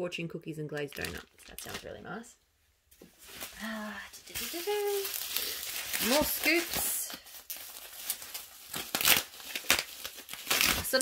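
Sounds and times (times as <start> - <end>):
plastic packaging crinkling: 0.7 - 2.2, 3.1 - 11.0.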